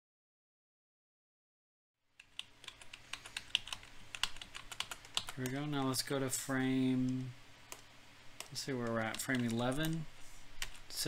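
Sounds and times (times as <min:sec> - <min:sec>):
computer keyboard keys clicking: 0:02.2 - 0:05.9, 0:07.0 - 0:10.0, 0:10.6 - 0:10.8.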